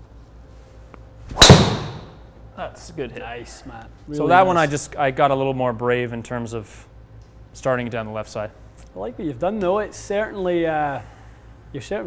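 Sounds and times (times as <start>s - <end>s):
golf driver striking ball: 1.3s - 2.2s.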